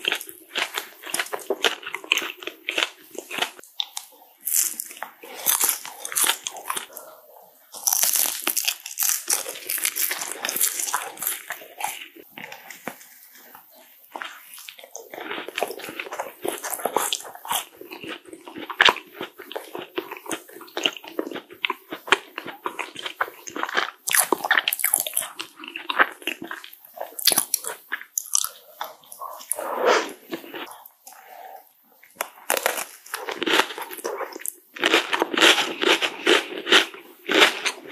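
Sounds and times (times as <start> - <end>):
moist chewing: 0.0 - 37.9
macaron shell crunching: 7.7 - 13.1, 32.2 - 37.9.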